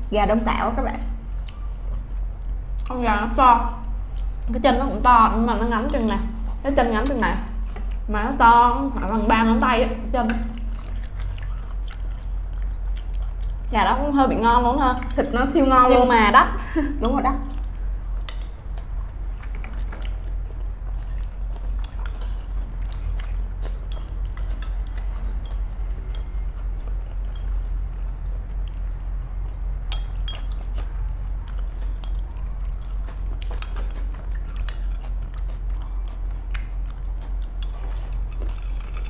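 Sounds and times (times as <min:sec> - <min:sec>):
person chewing food: 0:01.3 - 0:02.9, 0:07.0 - 0:08.1, 0:10.5 - 0:13.8, 0:17.3 - 0:39.0.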